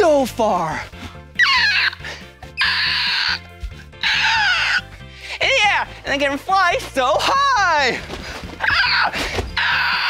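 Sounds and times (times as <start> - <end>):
bird of prey screeching: 1.4 - 3.4, 4.0 - 4.9.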